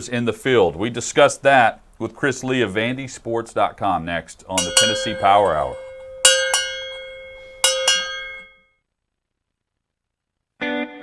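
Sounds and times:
cowbell struck: 4.6s - 8.6s.

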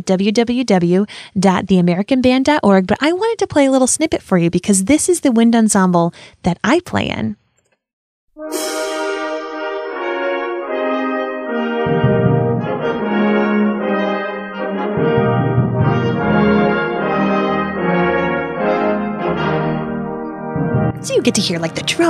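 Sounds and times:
brass playing held chords: 8.4s - 22.0s
low wind instruments: 8.4s - 22.0s.

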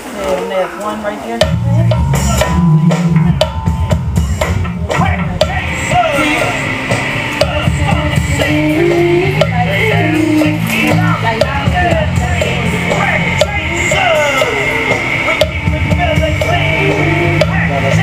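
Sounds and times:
rock band playing: 1.5s - 18.0s
person singing: 4.8s - 18.0s.

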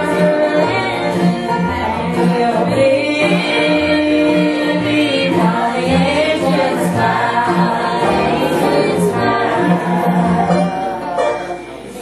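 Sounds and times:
women singing gospel together: 0.0s - 10.9s.

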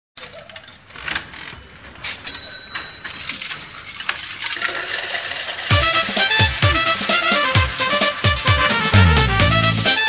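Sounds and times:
jingling payout clatter: 2.0s - 8.2s
band with kick drum: 5.7s - 10.0s.

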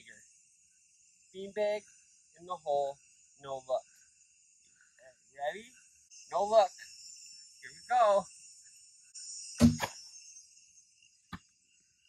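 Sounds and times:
crickets chirring: 0.0s - 12.0s
short sharp knock: 9.6s - 9.9s.

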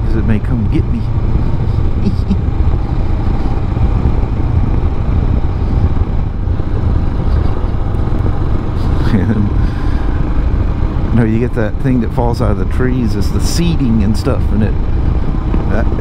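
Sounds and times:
motorcycle engine running: 0.0s - 16.0s
wind rush while riding: 0.0s - 16.0s.

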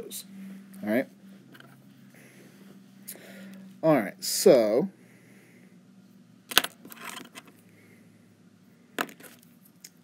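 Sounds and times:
faint steady hum: 0.0s - 10.0s.

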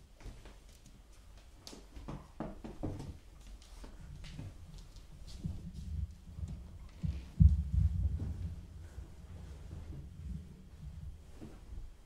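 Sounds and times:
muffled low thumps: 5.4s - 11.3s.

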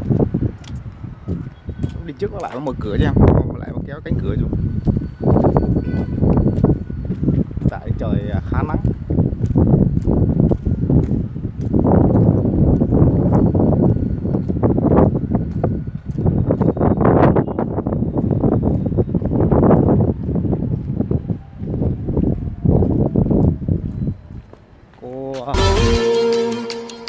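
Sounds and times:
wind buffeting microphone: 0.0s - 25.5s.

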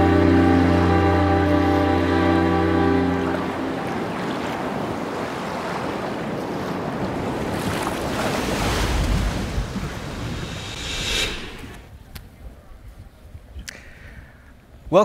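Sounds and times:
sea waves washing: 0.0s - 12.0s.

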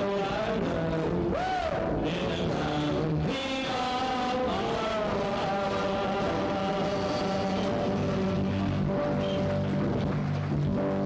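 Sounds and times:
accordion chords: 0.0s - 11.0s.

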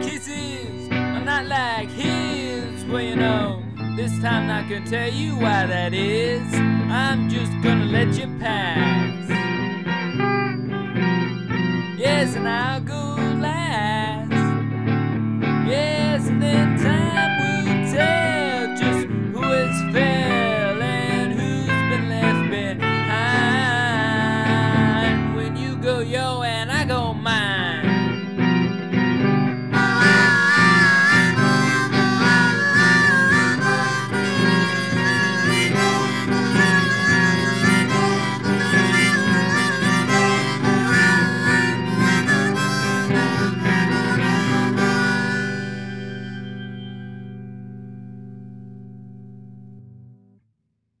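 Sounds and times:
harmonica solo: 0.0s - 25.4s, 27.6s - 47.5s.

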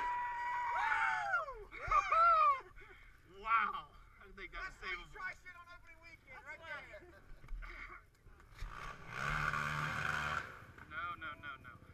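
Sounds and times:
men whooping and hollering: 0.0s - 2.8s.

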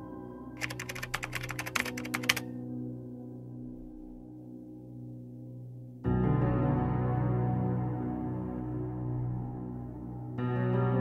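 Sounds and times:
keyboard typing clicks: 0.6s - 2.4s
ambient music drone: 2.4s - 11.0s.

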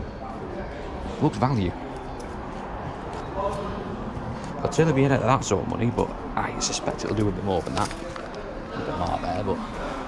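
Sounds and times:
background hubbub of crowd: 0.0s - 10.0s.

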